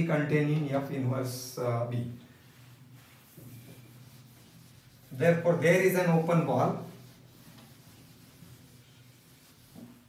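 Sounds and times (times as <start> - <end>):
eraser rubbing on whiteboard: 2.4 - 10.0.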